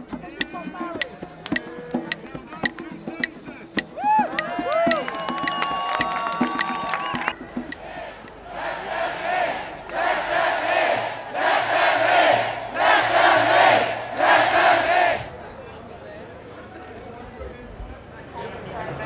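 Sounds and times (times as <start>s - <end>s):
crowd chanting in unison: 7.4s - 15.6s.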